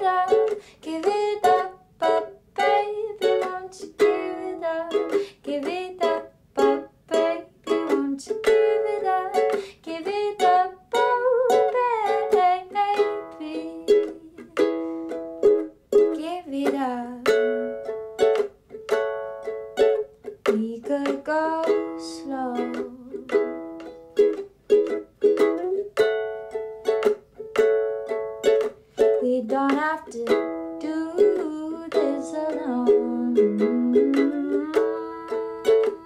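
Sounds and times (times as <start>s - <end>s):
woman singing wordlessly: 0.0s - 14.8s, 16.0s - 18.3s, 20.4s - 23.9s, 29.1s - 36.0s
ukulele strumming: 0.0s - 36.0s.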